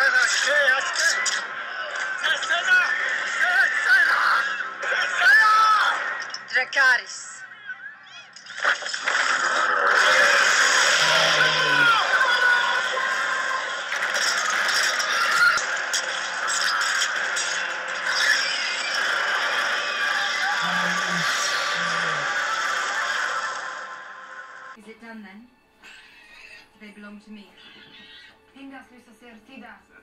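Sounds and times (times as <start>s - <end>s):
dragon screeches: 9.8s - 12.1s.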